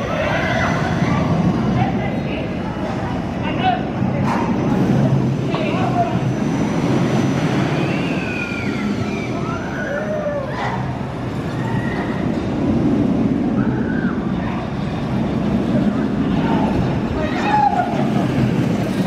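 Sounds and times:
roller coaster rumbling on track: 0.0 - 19.0
high squeals: 7.2 - 12.4.

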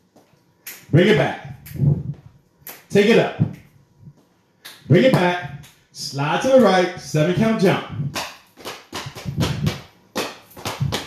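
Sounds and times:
feet thumping on floor: 7.4 - 11.0.

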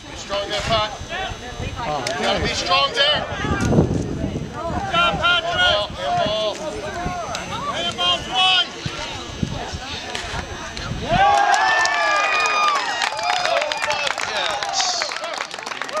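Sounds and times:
players and spectators shouting: 0.2 - 3.8, 4.4 - 16.0
crowd cheering and yelling: 0.6 - 9.4, 10.0 - 16.0
clapping: 11.3 - 16.0.

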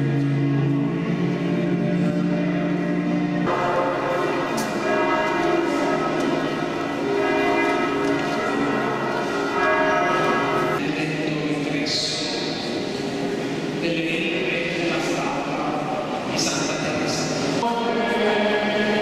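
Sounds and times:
church bells pealing: 0.0 - 19.0.

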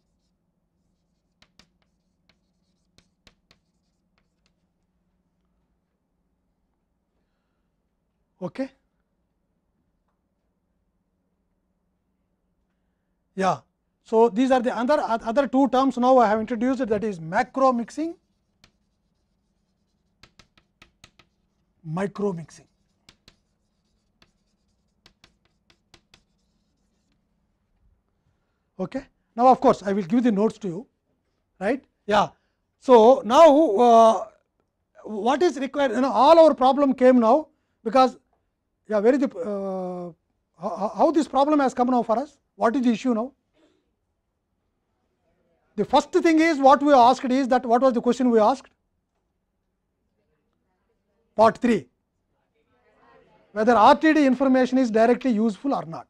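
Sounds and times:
chalk tapping and scratching: 0.0 - 4.8, 16.5 - 27.3.

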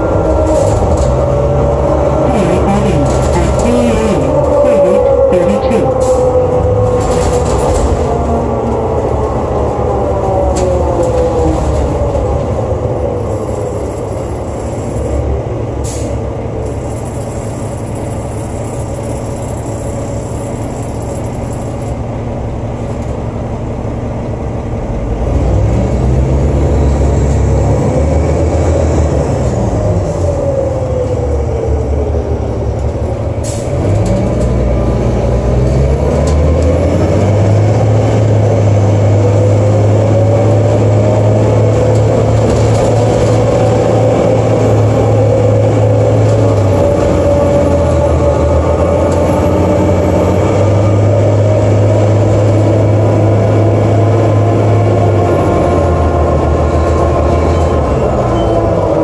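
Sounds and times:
bus engine whine: 0.0 - 59.0.

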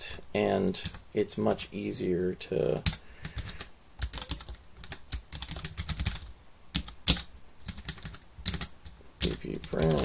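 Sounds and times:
computer keyboard typing: 2.8 - 10.0.

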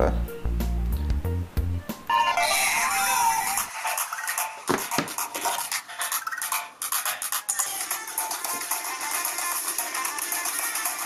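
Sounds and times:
bass-heavy music: 0.0 - 4.0
song through small tinny speaker: 2.1 - 11.0.

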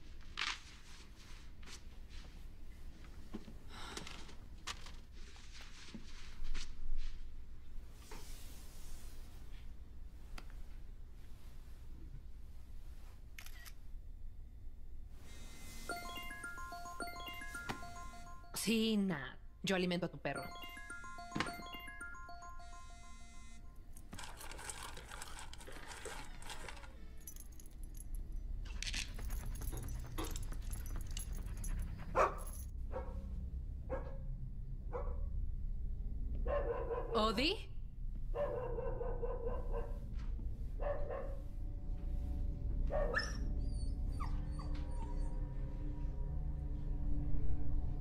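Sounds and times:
dog barking: 32.1 - 33.2, 34.9 - 35.3, 36.5 - 37.2, 38.4 - 40.0, 40.8 - 41.4
dog whining: 43.0 - 45.7.

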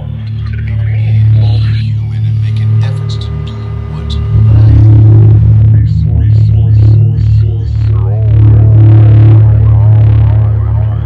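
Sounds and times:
low electronic drone: 0.0 - 11.0
wavering gliding tones: 0.0 - 11.0.

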